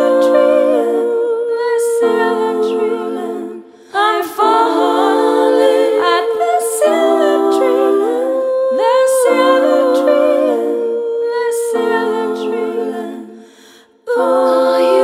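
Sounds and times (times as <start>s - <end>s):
layered wordless vocals humming: 0.0s - 15.0s.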